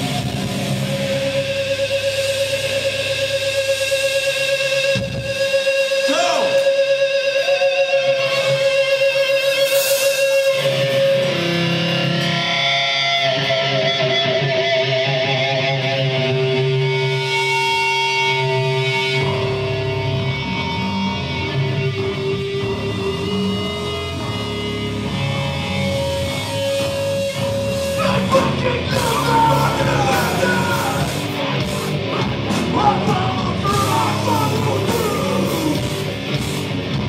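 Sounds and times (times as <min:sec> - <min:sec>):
deep bass guitar: 0:00.0 - 0:09.5, 0:10.5 - 0:37.0
distorted electric guitars: 0:00.0 - 0:37.0.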